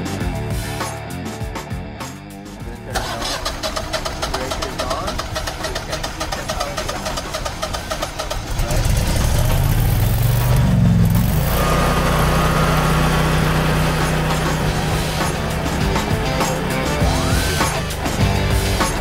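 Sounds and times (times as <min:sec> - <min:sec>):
generator engine running: 0:02.6 - 0:19.0
generator engine cranking: 0:02.9 - 0:19.0.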